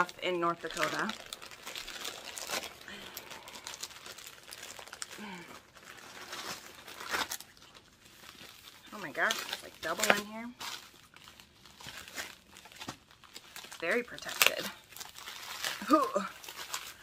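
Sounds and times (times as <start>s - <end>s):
wrapping crinkling and rustling: 0.0s - 17.0s
wrapping tearing: 0.0s - 17.0s.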